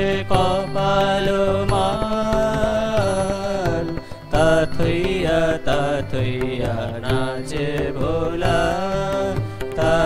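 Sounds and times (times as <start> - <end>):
harmonium chords: 0.0 - 10.0
men singing a devotional song: 0.0 - 10.0.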